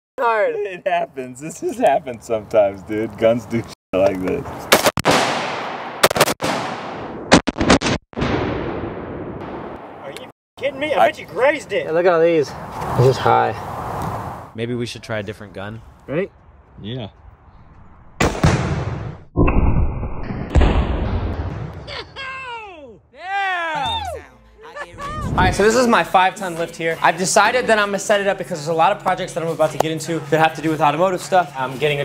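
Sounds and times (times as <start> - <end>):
explosive target bangs: 4.7 - 10.0, 18.1 - 21.9
rifle shots with echoes: 4.8 - 9.1.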